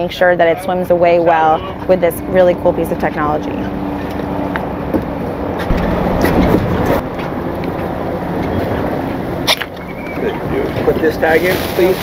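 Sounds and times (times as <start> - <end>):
wind: 0.0 - 12.0
water noise: 5.7 - 12.0.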